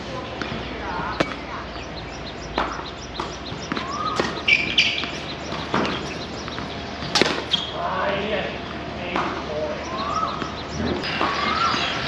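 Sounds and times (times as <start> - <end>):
bird chirps: 0.2 - 7.8, 9.7 - 12.0
tennis ball hits: 1.2 - 1.4, 2.6 - 7.8
shoe squeak: 3.2 - 7.8.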